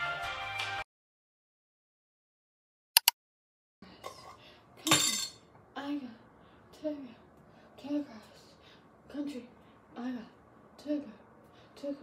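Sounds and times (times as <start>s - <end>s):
sharp clicks: 3.0s - 3.2s
glass jar clinking on stone: 4.9s - 5.4s.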